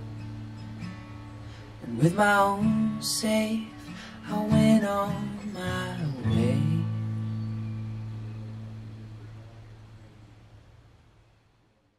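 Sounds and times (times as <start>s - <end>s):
guitar chord ringing: 0.0s - 9.9s.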